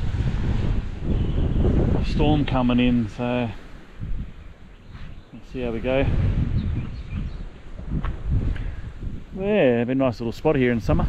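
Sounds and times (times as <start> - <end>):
gusty wind buffeting microphone: 0.0 - 11.0.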